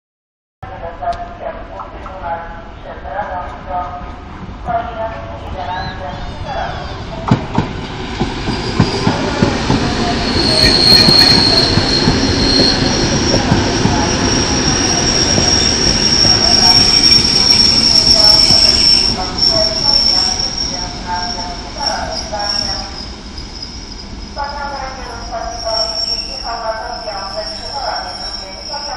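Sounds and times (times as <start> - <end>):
high-pitched train squeal: 5.5 - 7.3, 8.4 - 9.2, 9.8 - 28.9.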